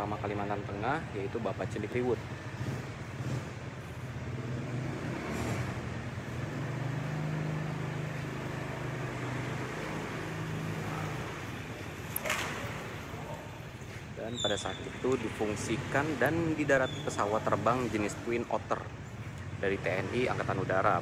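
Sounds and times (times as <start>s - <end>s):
outdoor background noise: 0.0s - 21.0s
vehicle engine hum: 0.0s - 21.0s.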